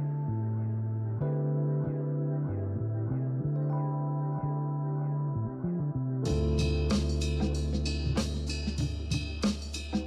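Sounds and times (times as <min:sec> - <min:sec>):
steady bass line: 0:00.0 - 0:10.0
drums: 0:06.3 - 0:10.0.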